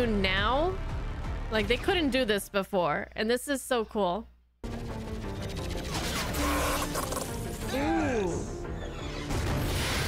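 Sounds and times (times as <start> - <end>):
music: 0.0 - 2.9, 4.6 - 10.0.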